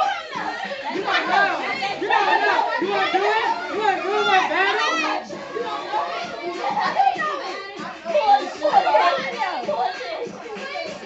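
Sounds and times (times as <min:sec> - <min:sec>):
music playing: 0:00.0 - 0:11.0
young people talking and calling out: 0:00.0 - 0:11.0.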